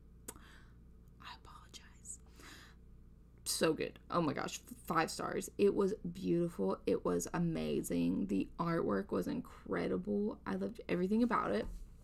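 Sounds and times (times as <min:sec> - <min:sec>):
woman whispering: 0:01.2 - 0:02.3.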